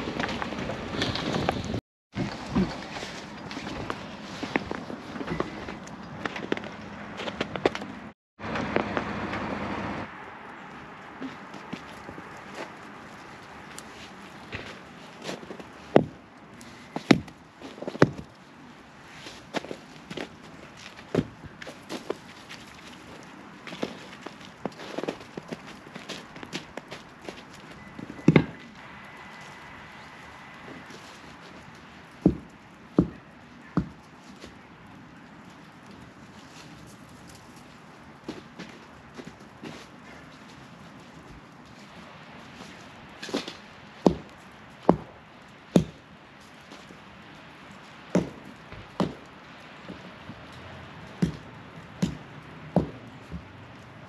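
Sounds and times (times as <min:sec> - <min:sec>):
footsteps crunching on icy snow: 0:00.0 - 0:09.9, 0:10.6 - 0:53.9.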